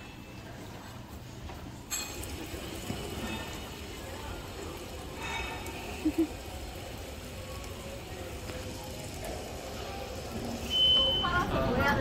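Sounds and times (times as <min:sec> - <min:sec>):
water running over stones: 0:02.1 - 0:11.2
short high beep: 0:10.7 - 0:11.4.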